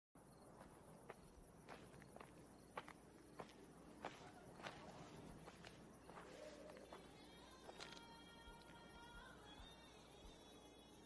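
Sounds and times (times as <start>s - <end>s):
footsteps crunching on gravel: 0.5s - 8.2s.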